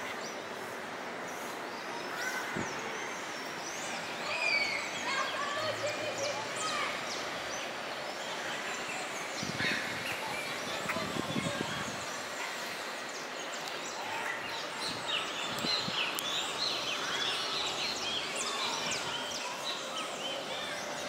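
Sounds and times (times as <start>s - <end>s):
outdoor background noise: 0.0s - 21.0s
small birds chirping: 0.0s - 21.0s.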